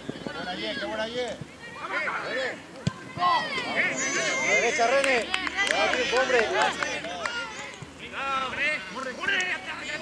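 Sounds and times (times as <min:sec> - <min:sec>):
voices shouting: 0:00.4 - 0:10.0.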